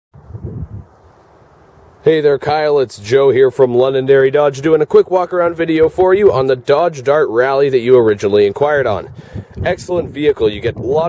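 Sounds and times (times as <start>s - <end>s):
wind buffeting microphone: 0.1s - 11.0s
faint outdoor hiss: 0.2s - 11.0s.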